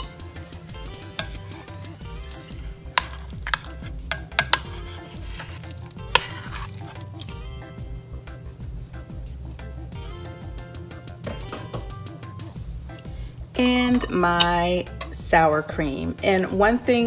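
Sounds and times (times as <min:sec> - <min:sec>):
spoon scraping a ceramic plate: 0:00.9 - 0:07.2
spoon clinking on plate: 0:02.9 - 0:04.8.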